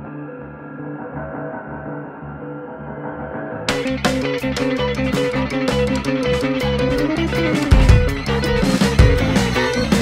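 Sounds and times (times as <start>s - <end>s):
dark soundtrack music: 0.0s - 10.0s
guitar-led music: 0.0s - 10.0s.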